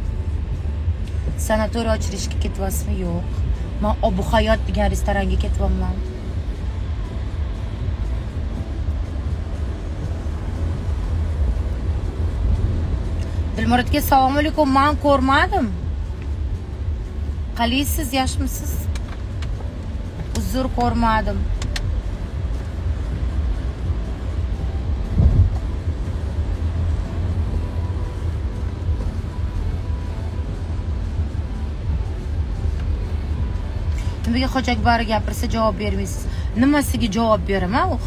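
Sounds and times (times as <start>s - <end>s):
car engine rumble: 0.0s - 38.0s
road noise: 0.0s - 38.0s.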